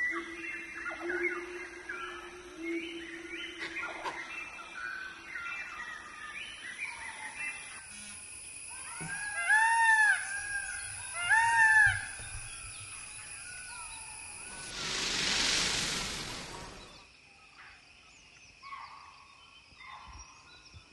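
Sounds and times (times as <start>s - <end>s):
high chirping whistles: 13.6s - 17.0s.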